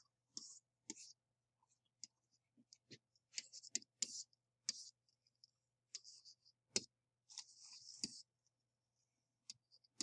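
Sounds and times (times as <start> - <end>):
stylus tapping and scratching: 0.0 - 8.5, 9.4 - 10.0.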